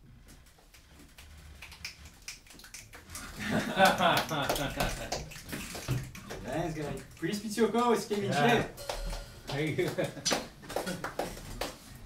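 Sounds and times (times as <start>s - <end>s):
people laughing: 3.2s - 5.4s, 9.6s - 11.4s.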